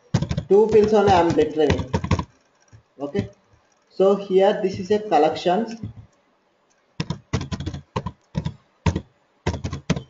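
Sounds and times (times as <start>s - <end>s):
typing on computer keyboard: 0.0s - 3.9s, 5.8s - 10.0s.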